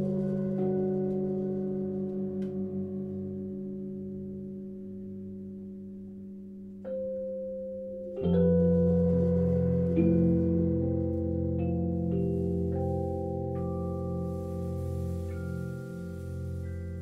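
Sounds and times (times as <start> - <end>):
electric piano chords: 0.0 - 17.0.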